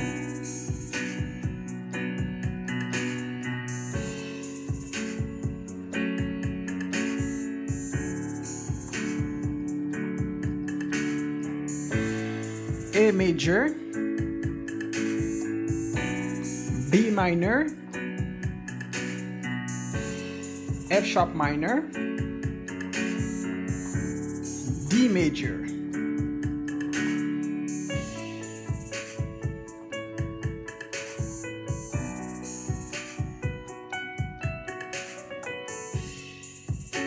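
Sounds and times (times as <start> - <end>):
drum beat: 0.0 - 3.0, 4.0 - 19.0, 19.8 - 37.0
electronic keyboard chords: 0.0 - 37.0.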